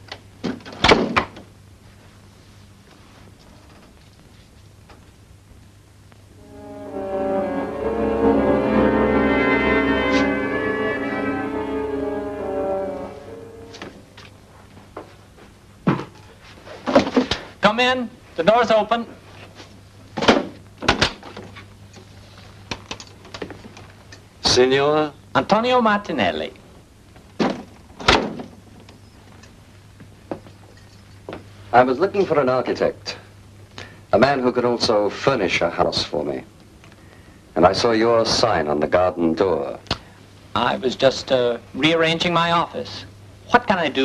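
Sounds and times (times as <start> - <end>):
low hum: 6.2 - 14.6.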